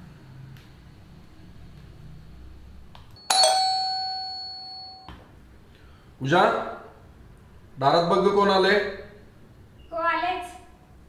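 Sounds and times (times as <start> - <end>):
doorbell chime: 3.2 - 5.1.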